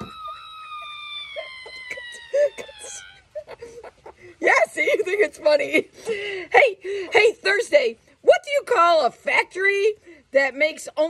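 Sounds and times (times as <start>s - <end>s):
hen calling: 0.0s - 4.4s
woman laughing softly: 0.0s - 5.3s.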